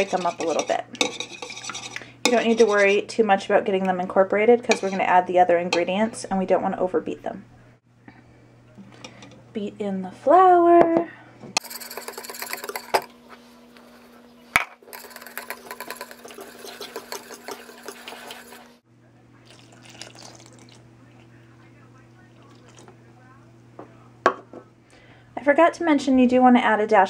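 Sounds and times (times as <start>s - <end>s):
whisk scraping through batter: 0.0s - 3.0s, 4.7s - 5.0s, 11.6s - 13.1s, 14.9s - 18.8s
whisk knocking against bowl: 11.6s - 13.1s, 14.9s - 18.6s.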